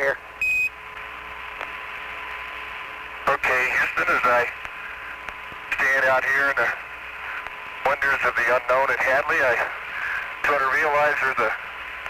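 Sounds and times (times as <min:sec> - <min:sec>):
faint steady hum: 0:00.0 - 0:12.0
short high radio beep: 0:00.4 - 0:00.7
radio channel hiss: 0:01.0 - 0:12.0
voice over the radio: 0:03.3 - 0:04.6, 0:05.7 - 0:06.8, 0:07.8 - 0:11.6.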